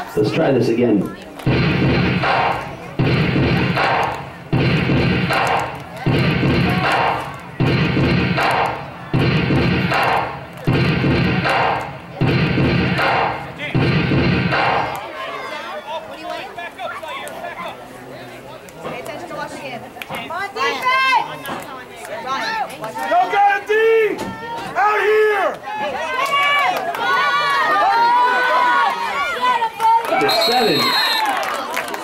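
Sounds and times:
voices chanting a cheer: 0:01.4 - 0:17.7.

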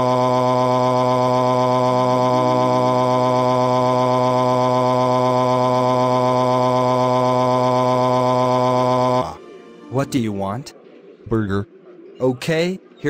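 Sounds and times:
synthetic voice screaming: 0:00.0 - 0:09.4.

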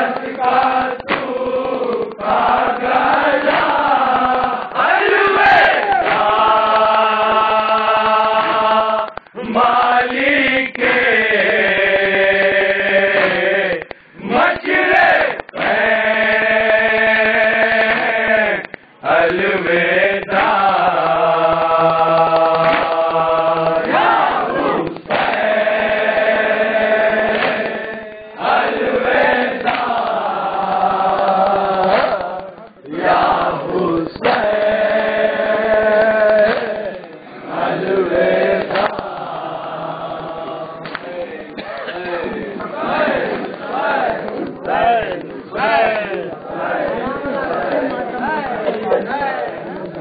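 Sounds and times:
hands beating on chests: 0:00.0 - 0:11.0, 0:13.1 - 0:19.5, 0:20.2 - 0:25.6, 0:27.2 - 0:27.9, 0:28.5 - 0:30.3, 0:31.0 - 0:34.8, 0:35.6 - 0:37.2, 0:38.6 - 0:39.4
men chanting a lament: 0:00.0 - 0:50.0.

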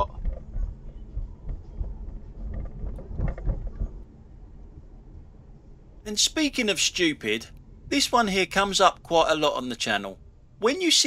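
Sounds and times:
car engine and tyres rumbling: 0:00.0 - 0:10.6.

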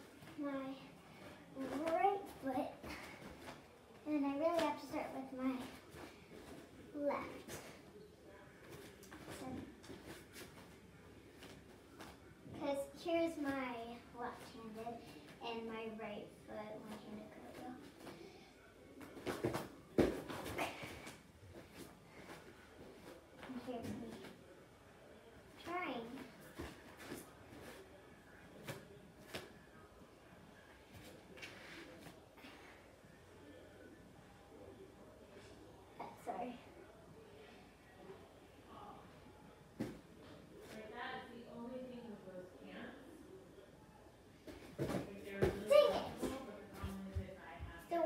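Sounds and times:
thumps on gym mat: 0:44.5 - 0:46.4
soft thuds and shuffles: 0:44.5 - 0:48.0.

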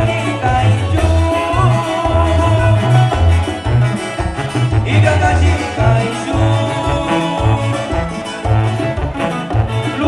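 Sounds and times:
plucked guitars: 0:00.0 - 0:10.0
sousaphone bass notes: 0:00.0 - 0:10.0.

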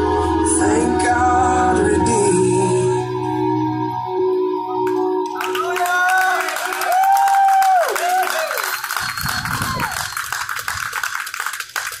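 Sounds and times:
people clapping: 0:04.8 - 0:12.0
cheering shouts: 0:05.4 - 0:10.2.

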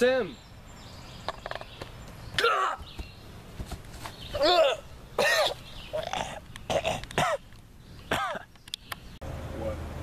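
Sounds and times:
young man coughing and straining: 0:04.4 - 0:07.5, 0:08.1 - 0:08.5.

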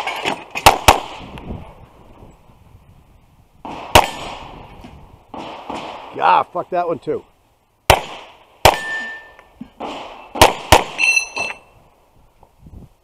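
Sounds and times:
pistol shots: 0:00.6 - 0:01.2, 0:03.7 - 0:04.5, 0:07.9 - 0:11.0.

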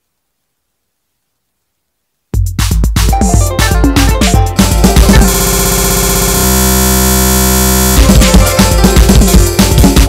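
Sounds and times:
electronic music: 0:02.4 - 0:10.0
harsh electronic buzzing tone: 0:04.6 - 0:10.0.

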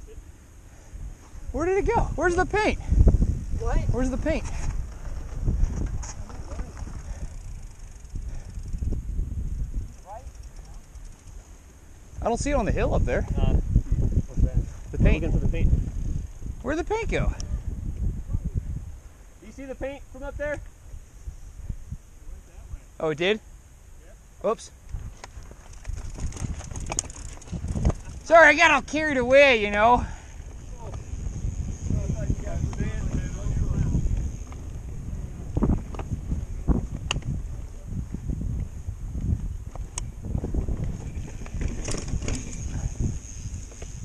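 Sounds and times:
wind rumbling on microphone: 0:00.0 - 0:44.0
bike clicks and rattles: 0:02.2 - 0:18.1, 0:24.8 - 0:44.0
mountain bike knocks and rattles: 0:25.0 - 0:29.4, 0:39.7 - 0:44.0.

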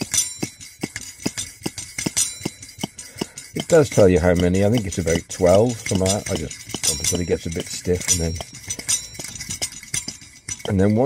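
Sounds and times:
stove pump plunger clicking: 0:00.0 - 0:11.0.

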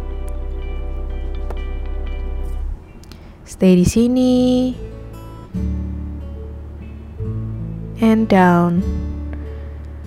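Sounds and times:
acoustic guitar strumming: 0:00.0 - 0:10.0
steady bass: 0:00.0 - 0:10.0.

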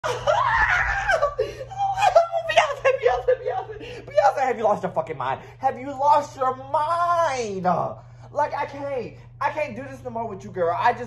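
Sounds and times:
man laughing excitedly: 0:00.0 - 0:04.4.

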